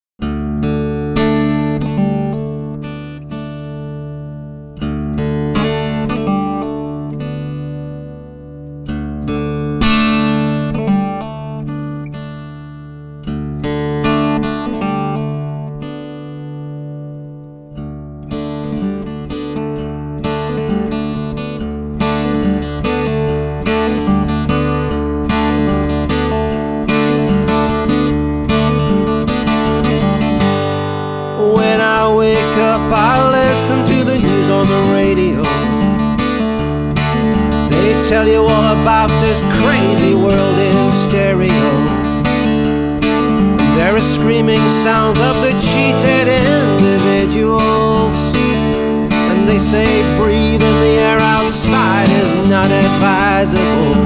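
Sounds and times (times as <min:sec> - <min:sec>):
acoustic guitar playing: 0:00.2 - 0:54.0.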